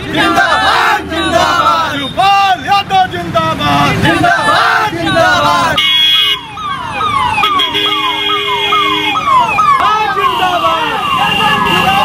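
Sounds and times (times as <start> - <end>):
crowd voices: 0.0 - 5.8, 6.5 - 12.0
car horn: 3.7 - 6.5, 7.4 - 9.4, 10.0 - 12.0
vehicle siren wailing: 4.1 - 12.0.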